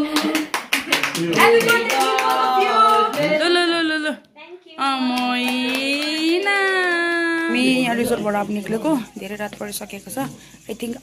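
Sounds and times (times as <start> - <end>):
people clapping in time: 0.0 - 3.6, 5.0 - 7.5.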